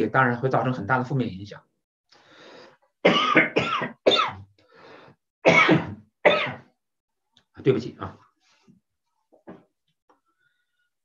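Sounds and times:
man breathing in: 2.1s - 2.9s, 4.6s - 5.2s
man coughing: 3.0s - 4.4s, 5.4s - 6.6s.

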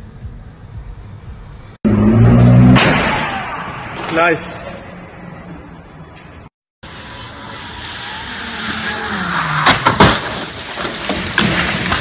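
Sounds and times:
car engine: 0.0s - 11.2s.

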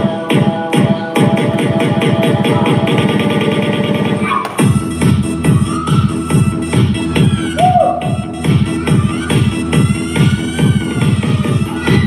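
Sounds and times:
upbeat electronic dance music: 0.0s - 12.0s.

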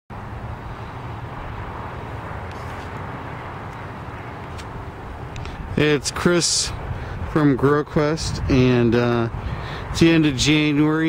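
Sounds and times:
outdoor background rumble: 0.1s - 11.0s.

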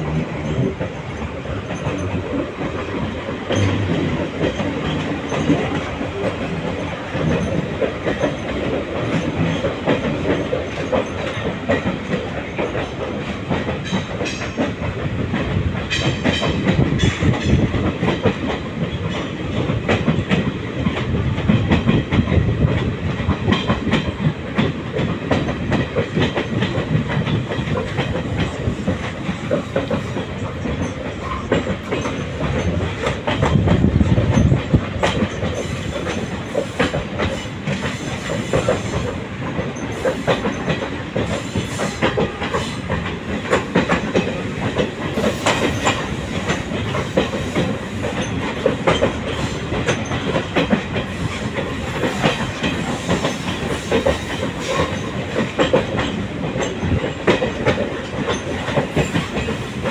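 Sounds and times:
train rumbling: 0.0s - 59.9s
wheels clacking over rail joints: 0.0s - 59.9s.

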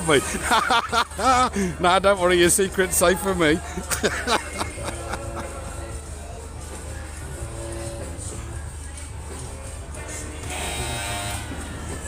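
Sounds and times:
funfair music over loudspeakers: 0.0s - 12.0s
buzzing tone: 10.4s - 11.8s.

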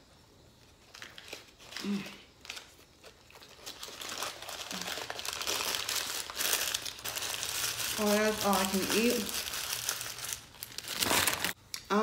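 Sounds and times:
paper wrapper crumpling: 0.6s - 11.6s.

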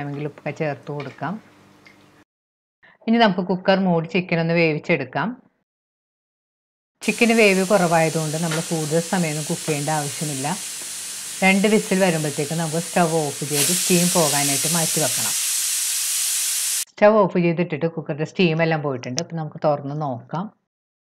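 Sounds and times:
pressure cooker hissing steam: 7.0s - 16.9s.

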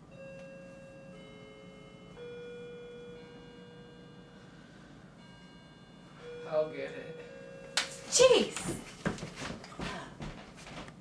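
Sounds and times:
doorbell chime tune: 0.0s - 8.5s.

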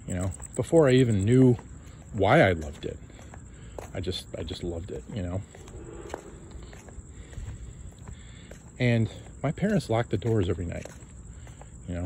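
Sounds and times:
footsteps on concrete: 1.3s - 12.0s
low microphone rumble: 5.4s - 8.1s.

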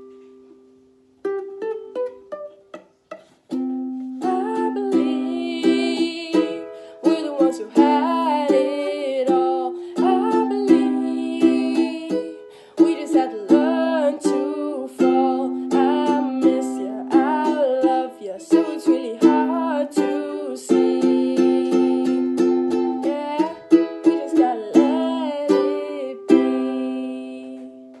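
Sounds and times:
ukulele strumming: 0.0s - 28.0s
woman singing: 4.2s - 28.0s.

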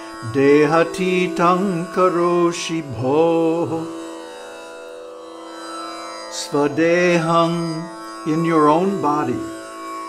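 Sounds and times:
steady instrumental drone: 0.0s - 10.0s
man chanting melodically: 0.2s - 3.9s, 6.3s - 9.6s.

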